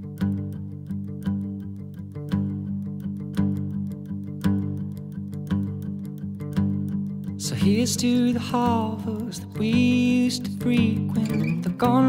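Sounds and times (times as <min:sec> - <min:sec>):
strummed guitar: 0:00.0 - 0:12.0.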